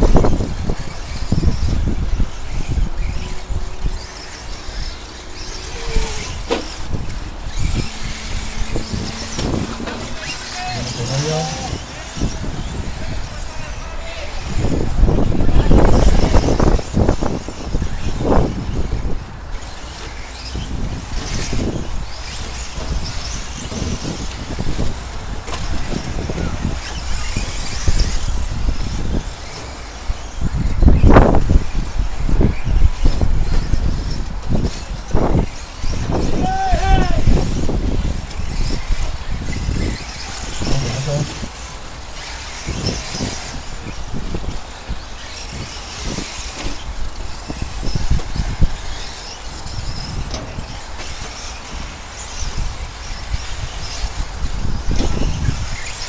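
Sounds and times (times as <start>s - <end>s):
toy truck motors racing: 0.0s - 56.0s
voices: 3.1s - 16.6s, 36.0s - 37.6s, 39.7s - 43.9s.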